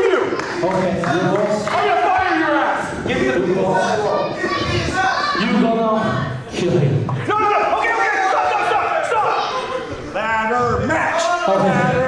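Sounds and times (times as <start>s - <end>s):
man talking into microphone: 0.0s - 8.1s, 10.1s - 12.0s.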